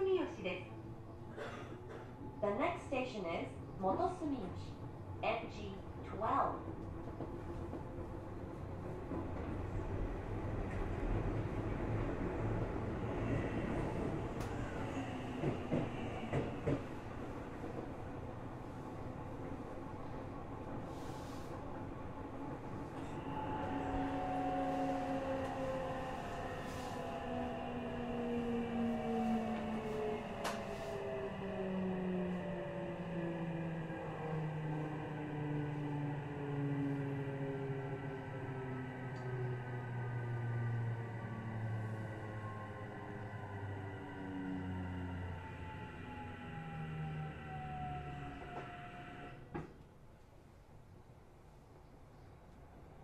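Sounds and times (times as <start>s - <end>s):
click: 14.4s - 14.6s, 30.4s - 30.7s, 39.1s - 39.3s.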